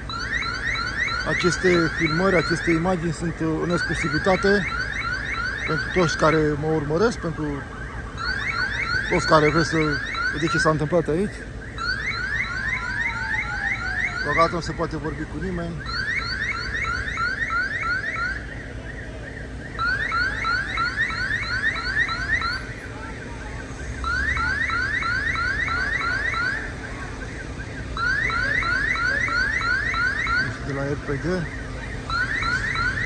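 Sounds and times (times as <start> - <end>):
security alarm whooping: 0.0 - 33.0.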